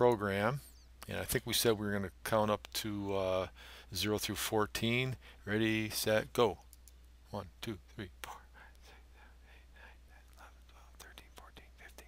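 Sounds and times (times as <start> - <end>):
man whispering: 7.7 - 12.0.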